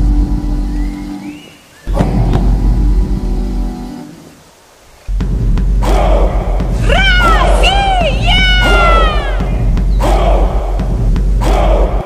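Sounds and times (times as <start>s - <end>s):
held musical tones: 0.0s - 5.8s
bass drum booms: 1.9s - 3.5s, 5.1s - 12.0s.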